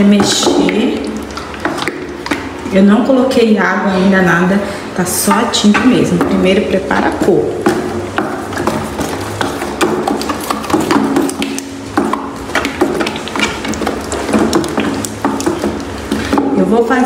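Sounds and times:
stick stirring paint in bucket: 0.0s - 4.2s, 5.2s - 17.0s.

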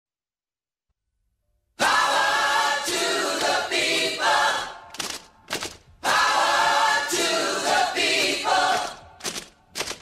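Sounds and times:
voices singing held chords: 1.8s - 4.9s, 6.0s - 9.2s.

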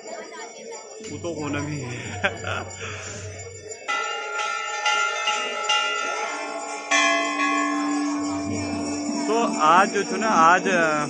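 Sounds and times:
temple bells ringing: 1.0s - 11.0s.

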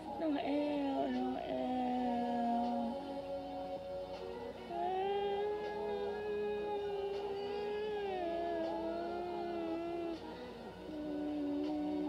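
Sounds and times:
woman singing a held note: 0.0s - 3.6s, 4.7s - 12.0s.

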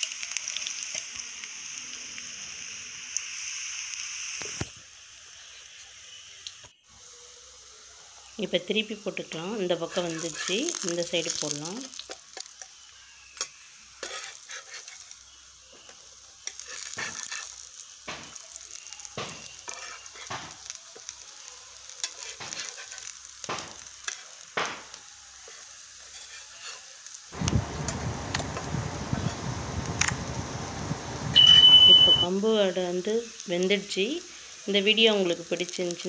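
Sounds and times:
food sizzling in oil: 0.0s - 36.0s
spatula scraping a pan: 9.8s - 10.8s, 13.3s - 15.3s, 16.4s - 18.4s, 19.3s - 20.8s, 22.0s - 24.4s, 25.4s - 27.0s.

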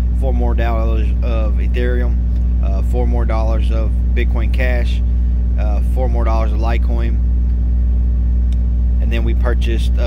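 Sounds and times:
loud steady low hum: 0.0s - 10.0s.

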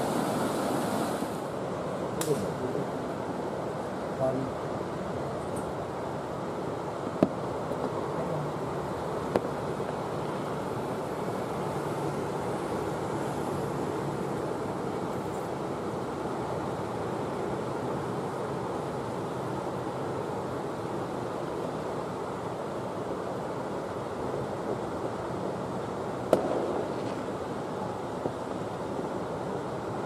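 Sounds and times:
distant city noise: 0.0s - 30.0s
distant fireworks bangs: 26.3s - 27.6s.

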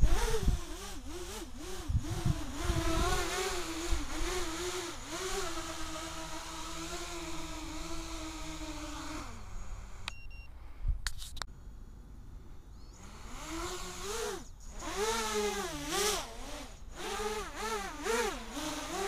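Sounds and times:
quadcopter motors whining: 0.0s - 10.1s, 12.7s - 19.0s.

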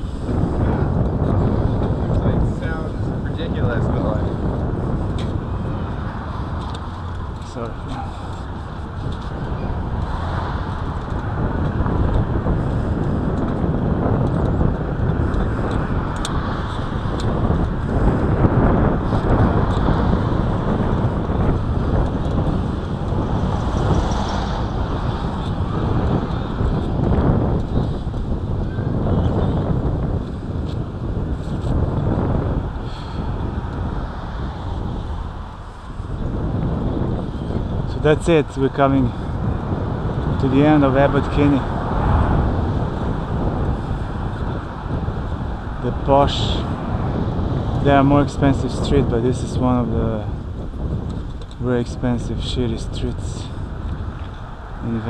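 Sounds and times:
street traffic: 0.0s - 55.0s
wind buffeting microphone: 0.0s - 55.0s.

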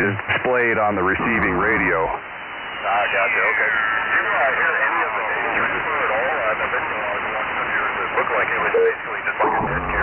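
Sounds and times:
garbled radio voice: 0.0s - 2.2s, 2.8s - 10.0s.

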